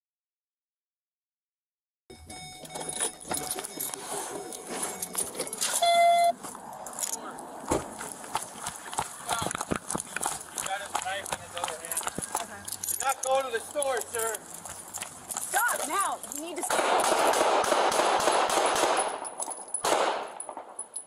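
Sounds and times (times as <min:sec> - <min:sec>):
short steady tone: 0:02.1 - 0:06.4
footsteps running: 0:07.7 - 0:12.8, 0:13.6 - 0:16.3
gear and clothing jostling: 0:08.0 - 0:16.7.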